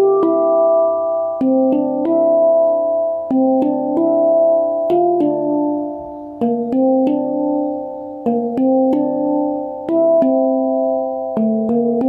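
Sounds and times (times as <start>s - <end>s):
handpan notes ringing: 0.0s - 12.0s.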